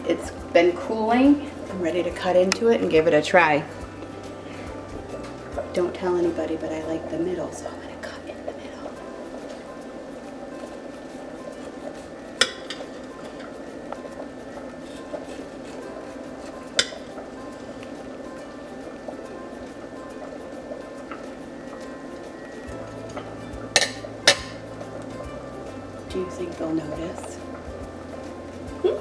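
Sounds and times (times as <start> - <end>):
soft background music: 0.0 - 29.0.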